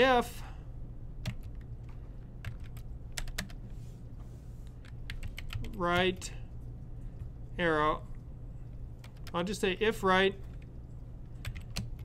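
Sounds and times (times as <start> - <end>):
low steady hum: 0.0 - 12.0
computer keyboard keystrokes: 1.2 - 3.6, 4.8 - 6.2, 11.4 - 12.0.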